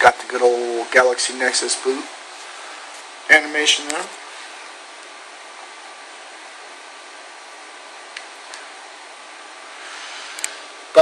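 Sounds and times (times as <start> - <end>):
room noise hiss: 0.0 - 11.0
faint click: 10.4 - 10.6.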